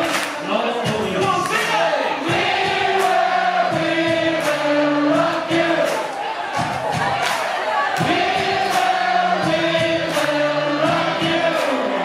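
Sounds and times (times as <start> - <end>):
live band music: 0.0 - 7.3, 8.0 - 12.0
voices singing together: 0.0 - 12.0
drum strokes: 0.8 - 6.0, 8.0 - 11.7.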